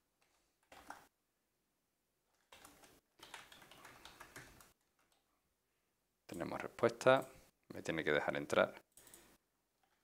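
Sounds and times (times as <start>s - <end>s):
faint keyboard typing: 0.2s - 1.1s, 2.3s - 5.3s, 8.9s - 10.0s.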